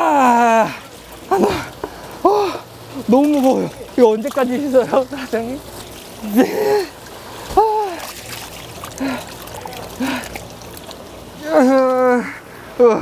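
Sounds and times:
water pouring into plastic basin: 2.8 - 11.3.

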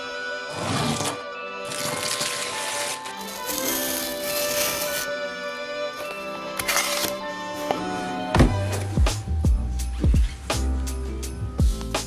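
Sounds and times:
background music with held notes: 0.0 - 12.0
wrapping paper tearing and rustling: 0.5 - 5.1, 6.6 - 7.2.

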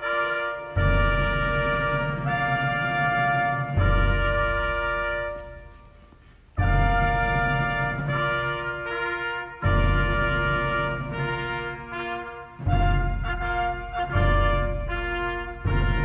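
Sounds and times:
trumpets and trombones chords: 0.0 - 16.0
deep drum stroke: 0.8 - 8.9, 9.6 - 16.0.

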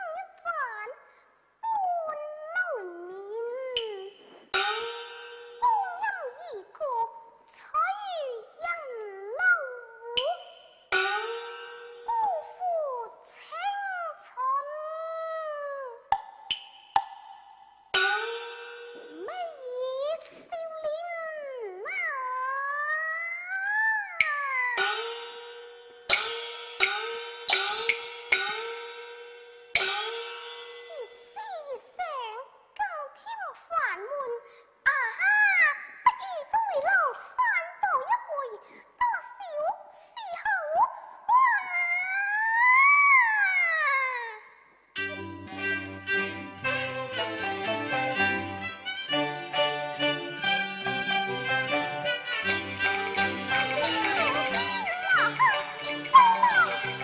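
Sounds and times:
girl singing opera in high voice: 1.6 - 4.3, 19.1 - 24.8, 30.9 - 44.5
gong and cymbal strikes: 4.2 - 5.7, 24.8 - 31.0.

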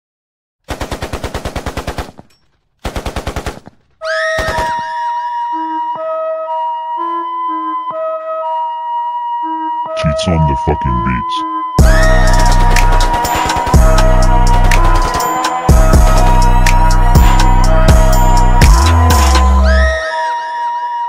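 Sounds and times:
rapid automatic gunfire: 0.7 - 3.8, 12.6 - 14.0
flute-like synth melody: 4.0 - 21.0
bass line: 11.8 - 13.2, 13.8 - 20.0
electronic beat: 11.8 - 19.9.

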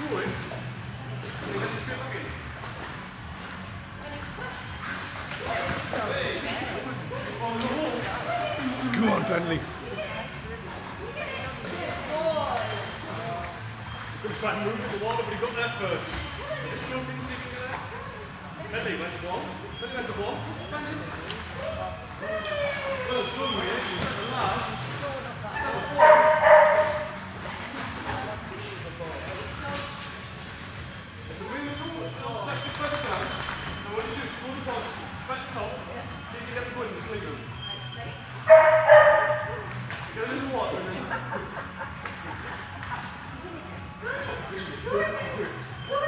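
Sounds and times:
dog barking and yipping: 25.6 - 27.1, 38.5 - 39.4.

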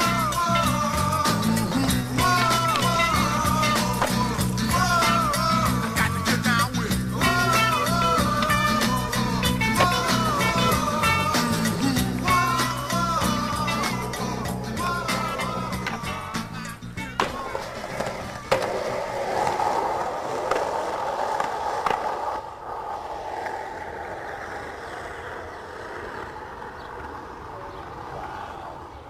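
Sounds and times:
music: 0.0 - 18.6
skateboard clacks: 0.0 - 28.9
skateboard wheels rolling on asphalt: 0.0 - 29.0.

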